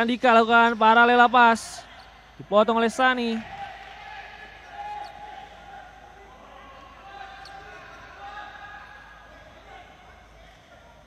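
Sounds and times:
players shouting: 0:00.7 - 0:11.0.

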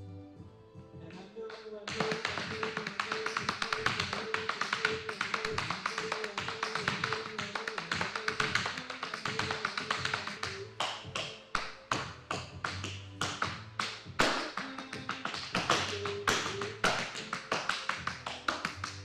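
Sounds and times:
backing music: 0:00.0 - 0:19.0
tap shoes on wooden floor: 0:01.1 - 0:19.0.

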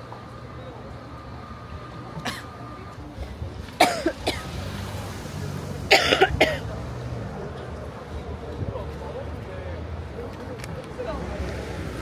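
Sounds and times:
person coughing: 0:02.3 - 0:02.5, 0:03.8 - 0:04.5, 0:05.9 - 0:06.6.

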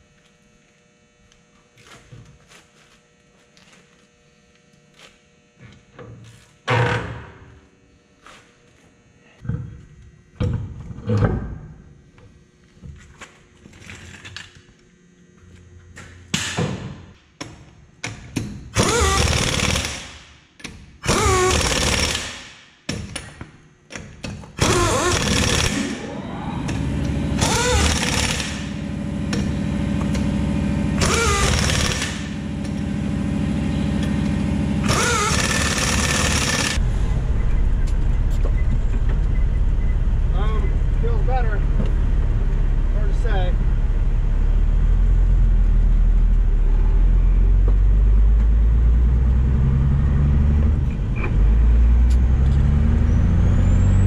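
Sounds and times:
impact wrench bursts: 0:18.7 - 0:20.4, 0:21.0 - 0:22.6, 0:24.6 - 0:30.2, 0:30.9 - 0:32.8, 0:34.0 - 0:36.8
diesel engine rumbling: 0:26.0 - 0:31.6, 0:32.2 - 0:35.3, 0:36.8 - 0:54.0.

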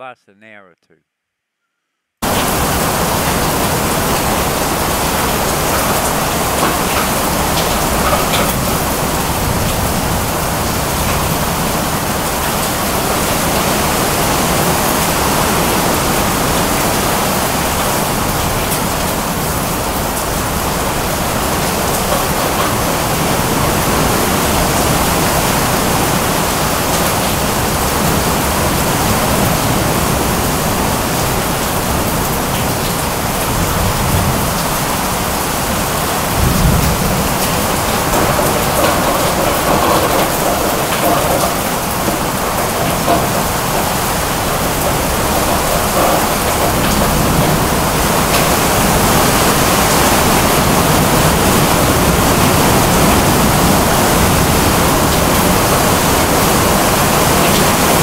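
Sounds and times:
heavy rain pouring: 0:02.2 - 0:58.0
low thunder rumble: 0:33.4 - 0:58.0.

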